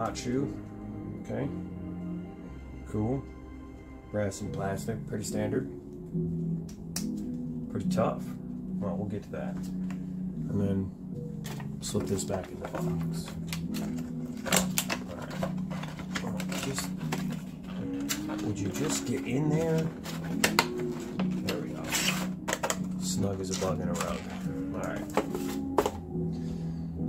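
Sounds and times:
plastic packaging clicking and rattling: 11.4s - 26.1s.

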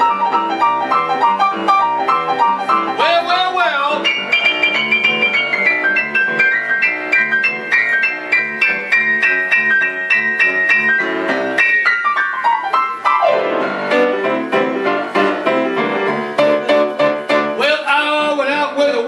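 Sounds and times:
boogie-woogie piano: 0.0s - 19.0s.

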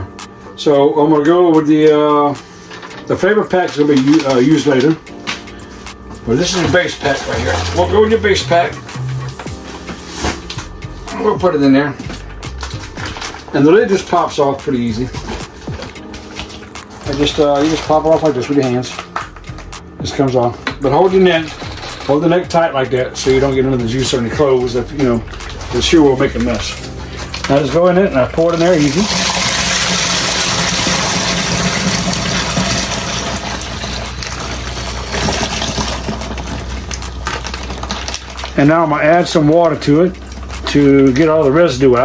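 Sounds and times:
plastic bag crinkling: 2.6s - 11.4s, 12.1s - 42.0s
liquid pouring into bucket of water: 26.4s - 38.7s.

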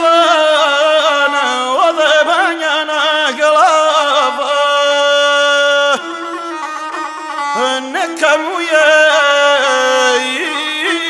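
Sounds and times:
man singing high held note: 0.0s - 11.0s
single-string bowed fiddle: 3.5s - 11.0s.

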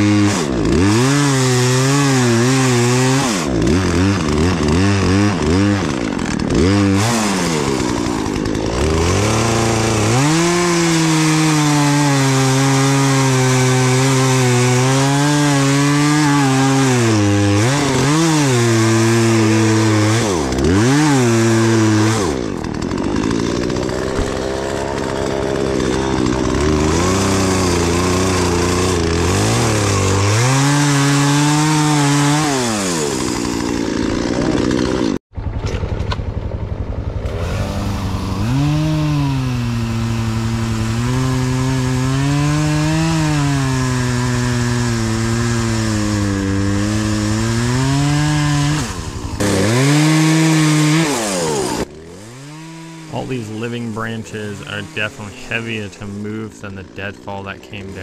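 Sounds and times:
chainsaw cutting wood: 0.0s - 58.0s.

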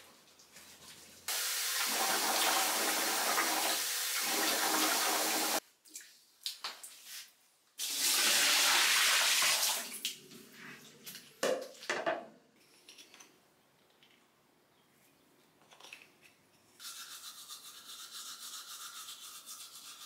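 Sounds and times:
water pouring and splashing: 7.8s - 10.2s.

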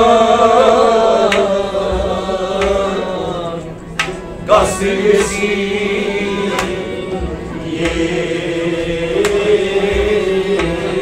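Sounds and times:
harmonium: 0.0s - 11.0s
man singing drawn-out line: 0.0s - 11.0s
sharp percussive strike: 3.9s - 11.0s.

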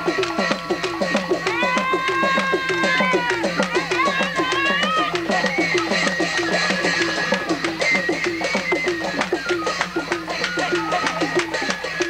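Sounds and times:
fast drum beat: 0.0s - 12.0s.

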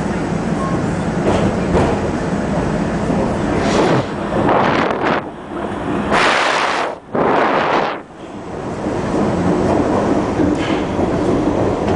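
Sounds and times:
subway train wheels rumbling on rail: 0.0s - 11.9s
rushing noise surges: 3.3s - 8.5s.

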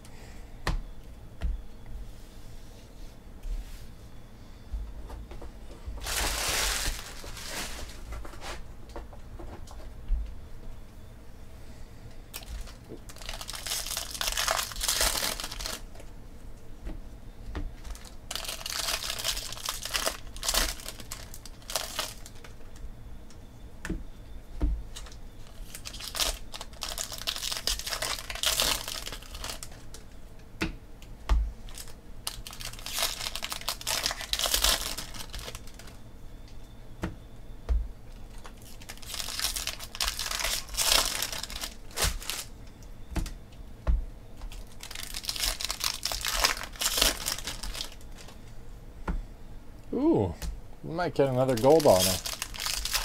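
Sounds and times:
cards rustling: 38.3s - 42.5s, 51.3s - 53.0s.

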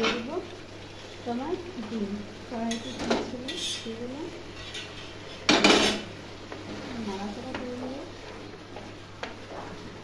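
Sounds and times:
metal kitchenware clattering on pot: 4.6s - 6.1s.

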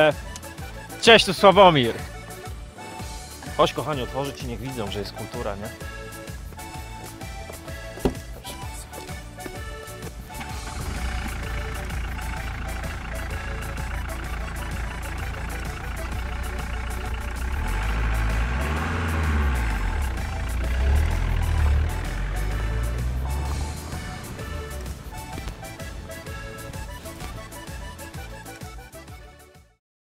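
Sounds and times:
music: 0.0s - 29.8s
car engine rumble: 2.0s - 29.0s
car driving on gravel: 2.9s - 28.4s.

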